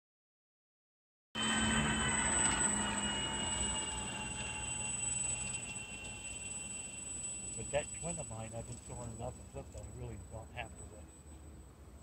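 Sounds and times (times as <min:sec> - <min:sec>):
high whine of model plane motors: 0:01.4 - 0:11.4.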